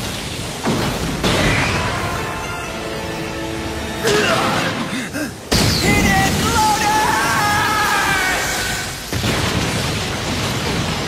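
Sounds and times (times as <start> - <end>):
rumbling crash of breaking stone: 0.0 - 2.2, 8.2 - 11.0.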